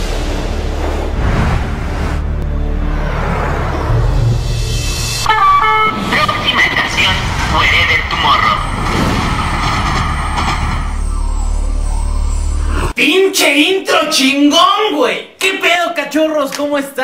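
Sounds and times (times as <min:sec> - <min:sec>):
metro train rumble: 0:00.0 - 0:13.0.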